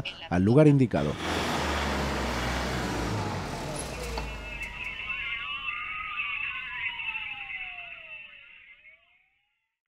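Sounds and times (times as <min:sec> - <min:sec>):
fire engine diesel engine running: 0:01.0 - 0:05.3
slowly rising tone: 0:01.1 - 0:09.2
high wavering siren tone: 0:02.9 - 0:09.7.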